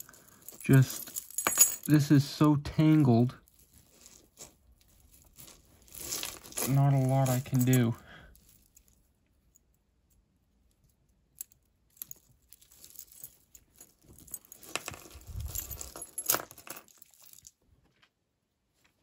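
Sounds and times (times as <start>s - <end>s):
jewelry jangling and clinking: 0.0s - 17.6s.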